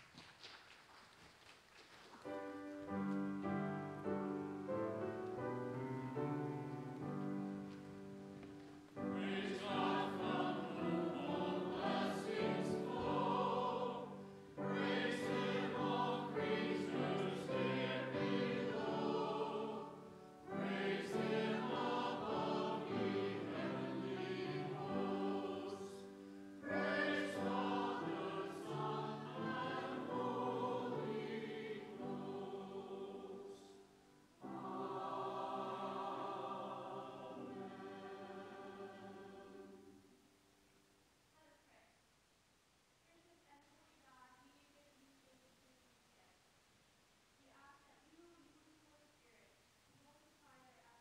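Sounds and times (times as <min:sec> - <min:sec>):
piano accompaniment: 0:02.2 - 0:32.8
congregation singing a hymn: 0:02.8 - 0:40.1.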